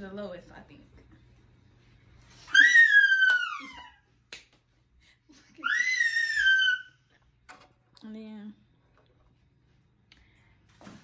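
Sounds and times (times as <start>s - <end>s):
high-pitched vocal squeals: 2.4s - 4.1s, 5.6s - 7.1s.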